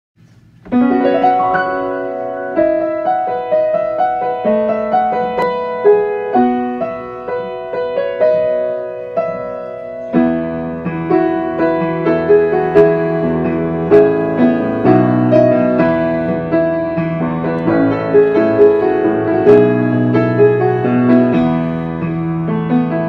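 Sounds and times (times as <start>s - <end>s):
solo piano melody over chords: 0.4s - 23.0s.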